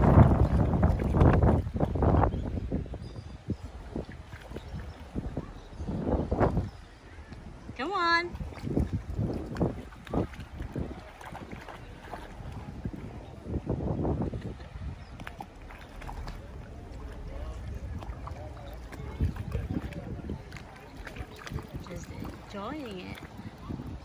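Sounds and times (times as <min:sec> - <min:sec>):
water sloshing and splashing: 0:00.0 - 0:24.0
wind buffeting microphone: 0:00.0 - 0:24.0.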